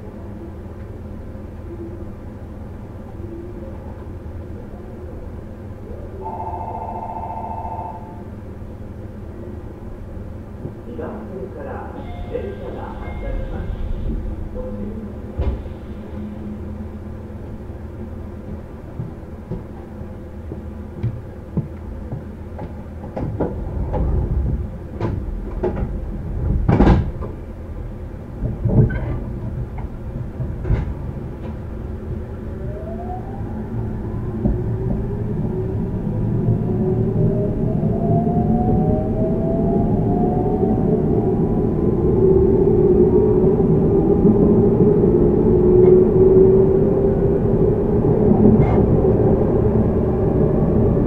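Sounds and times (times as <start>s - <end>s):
low train rumble: 0.0s - 51.0s.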